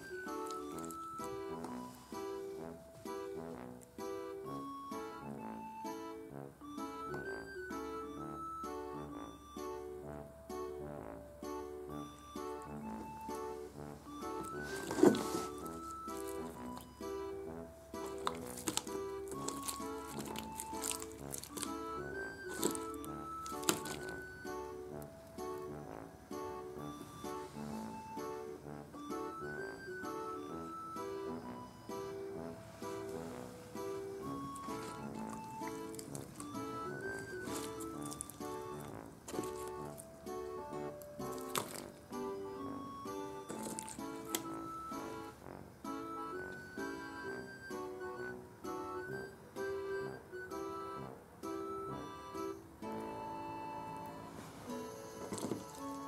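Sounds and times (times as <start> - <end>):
plucked-string background music: 0.0 - 56.0.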